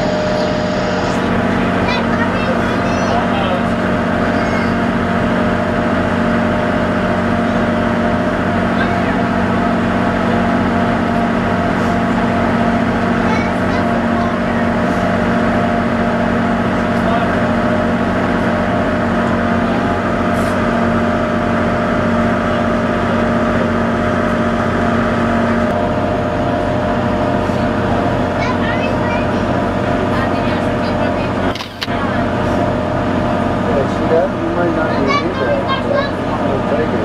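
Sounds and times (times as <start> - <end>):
boat engine droning: 0.0 - 37.0.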